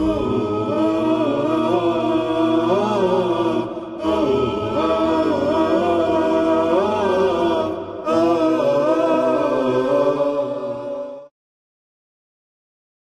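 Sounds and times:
unaccompanied vocal chant: 0.0 - 11.3.

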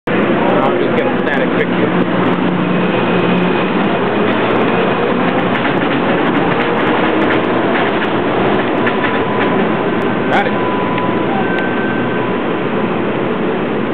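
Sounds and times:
low motor hum: 0.1 - 13.9.

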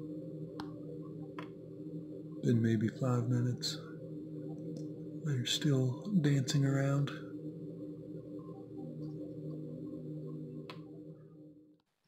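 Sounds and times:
steady low drone: 0.0 - 11.8.

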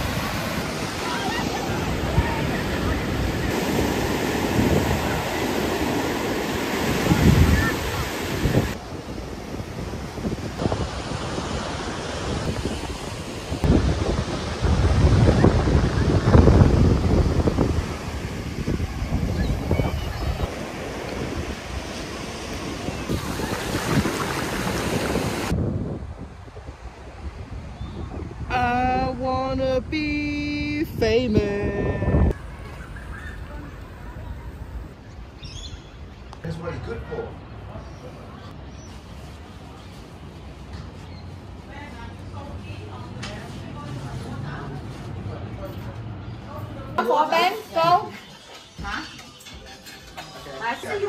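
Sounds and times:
ocean surf breaking: 0.0 - 27.6
wind buffeting microphone: 0.0 - 36.3.

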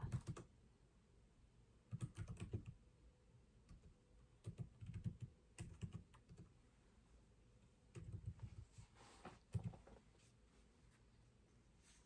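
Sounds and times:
computer keyboard typing: 0.0 - 0.5, 1.9 - 2.8, 3.6 - 6.6, 7.9 - 8.6, 9.5 - 9.8.

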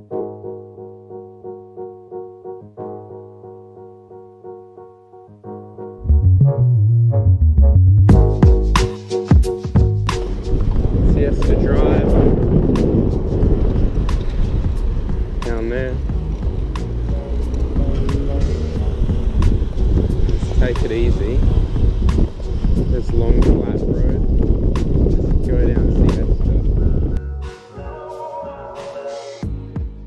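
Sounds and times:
background music: 0.0 - 30.0
wind buffeting microphone: 10.1 - 27.2.

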